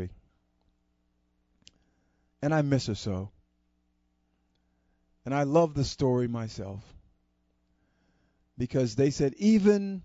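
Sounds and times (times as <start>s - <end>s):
man speaking: 0.0s - 0.2s, 2.4s - 3.4s, 5.3s - 7.0s, 8.6s - 10.0s
faint electrical hum: 0.0s - 10.0s.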